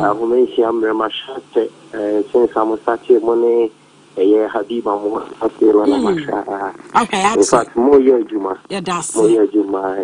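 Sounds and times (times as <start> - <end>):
person talking: 0.0 - 0.5, 4.2 - 7.9, 8.7 - 9.6.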